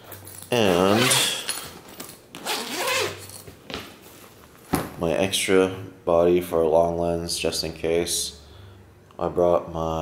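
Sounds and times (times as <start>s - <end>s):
backpack zipper pulled open: 0.7s - 1.4s, 2.4s - 3.4s.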